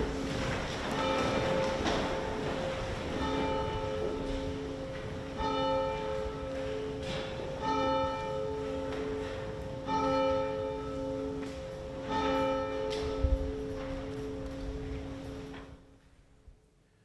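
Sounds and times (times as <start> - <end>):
church bell tolling: 0.0 - 15.9.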